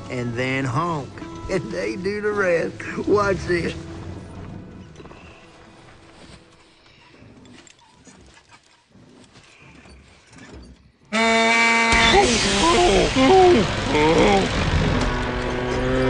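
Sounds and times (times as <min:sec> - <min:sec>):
tractor engine sputtering: 0:07.4 - 0:16.0
truck horn honk: 0:11.1 - 0:13.8.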